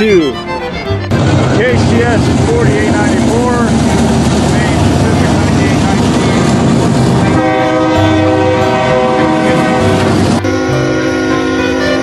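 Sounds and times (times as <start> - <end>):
diesel locomotives rumbling past: 0.0 - 12.0
train horn chord: 7.1 - 12.0.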